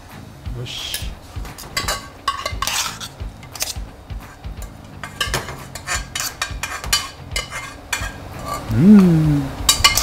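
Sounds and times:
metal cookware clinking: 0:00.9 - 0:03.9, 0:04.5 - 0:08.7, 0:09.7 - 0:10.0
pan scraping: 0:01.5 - 0:08.7.

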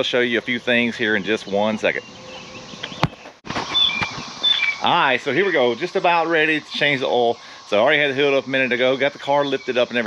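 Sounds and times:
outdoor ambience: 0:00.0 - 0:10.0
high bird chirps: 0:01.0 - 0:10.0.

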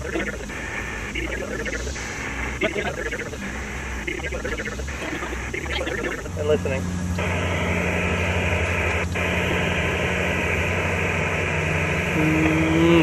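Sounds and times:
low hum: 0:00.0 - 0:13.0
radio static hiss: 0:00.0 - 0:13.0.

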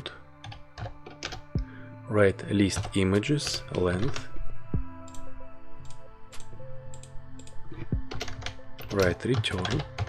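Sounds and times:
keyboard typing: 0:00.4 - 0:01.6, 0:02.7 - 0:04.3, 0:05.8 - 0:10.0.

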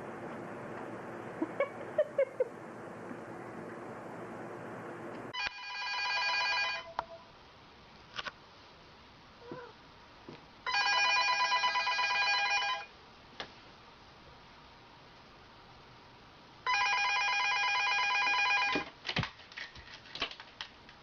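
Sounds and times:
telephone warbling ring: 0:05.4 - 0:07.0, 0:10.7 - 0:12.9, 0:16.7 - 0:18.8.

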